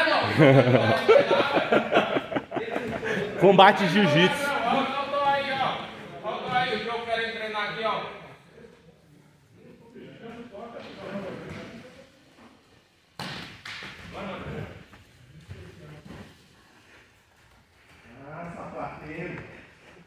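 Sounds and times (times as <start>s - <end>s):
voices echoing in a hall: 0.0s - 20.0s.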